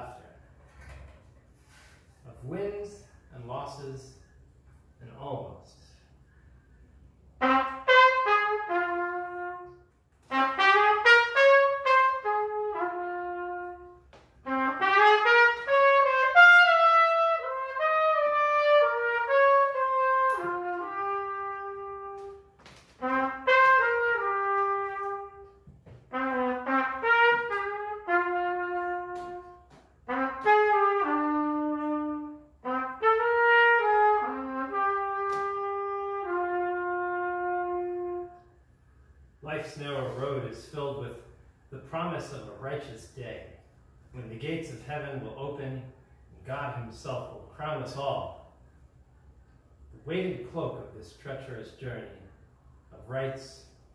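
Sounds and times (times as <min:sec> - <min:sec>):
solo trumpet playing: 0:07.4 - 0:38.8.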